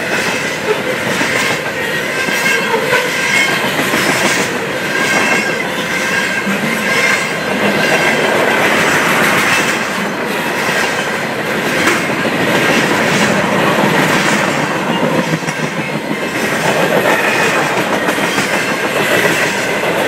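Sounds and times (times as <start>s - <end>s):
train wheels clattering over rails: 0.0s - 20.0s
wheels squealing: 0.2s - 19.9s.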